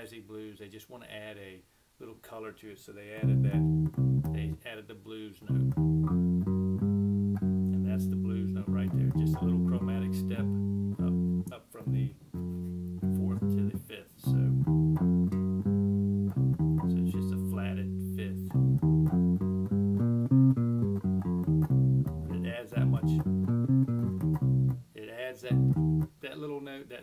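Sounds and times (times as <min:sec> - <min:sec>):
electric bass playing scale: 0:03.2 - 0:04.6, 0:05.4 - 0:26.2.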